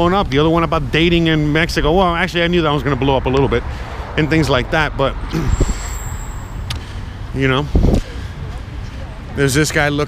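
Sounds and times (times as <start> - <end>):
road traffic: 0.0 - 10.0
high-pitched whine: 5.3 - 7.4.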